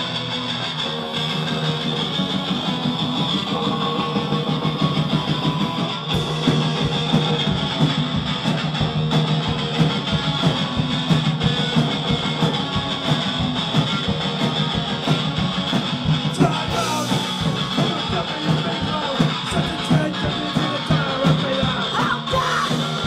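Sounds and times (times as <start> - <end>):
distorted electric guitar riff: 0.0 - 23.0
drums with steady beat: 0.0 - 23.0.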